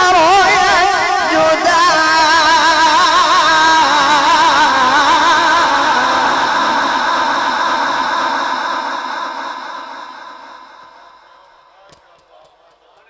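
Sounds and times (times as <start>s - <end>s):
amplified voice reciting melismatically: 0.0s - 13.0s.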